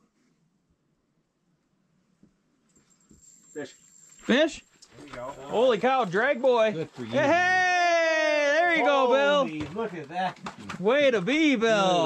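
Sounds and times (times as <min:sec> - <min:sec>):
person calling out excitedly: 0:07.1 - 0:09.5.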